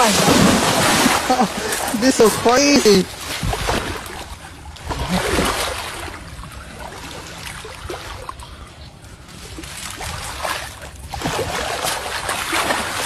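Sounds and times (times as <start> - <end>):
muddy water splashing: 0.0 - 13.0.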